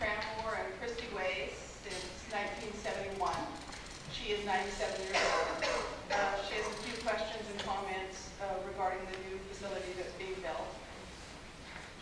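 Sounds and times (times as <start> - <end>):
person talking in a large hall: 0.0 - 12.0.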